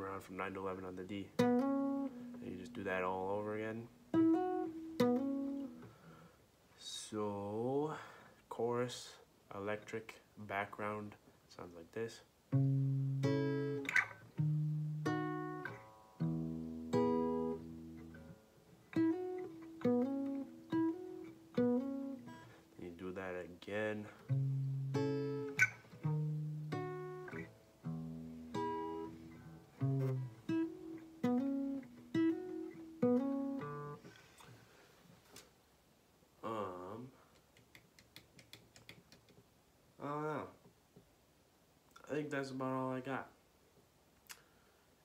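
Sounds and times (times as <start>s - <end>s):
fingerpicked acoustic guitar: 0.1s - 6.4s, 12.5s - 34.7s.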